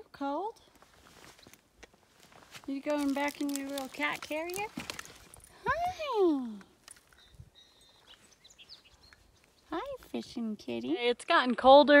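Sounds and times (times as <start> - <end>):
woman speaking: 2.7 - 4.8, 5.5 - 6.7, 9.7 - 12.0
faint bird chirps: 7.1 - 9.9.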